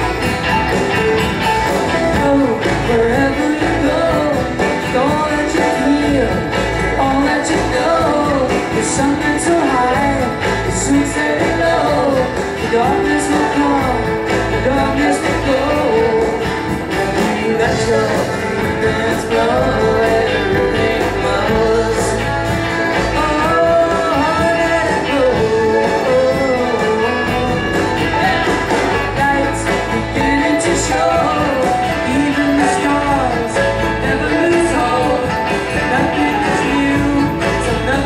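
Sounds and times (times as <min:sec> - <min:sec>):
bass: 0:00.0 - 0:38.0
drums: 0:00.0 - 0:38.0
strummed electric guitar: 0:00.0 - 0:38.0.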